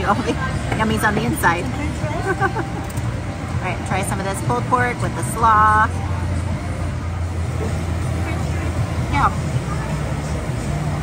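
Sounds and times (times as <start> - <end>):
faint background chatter: 0.0 - 11.0
steady low rumble: 0.0 - 11.0.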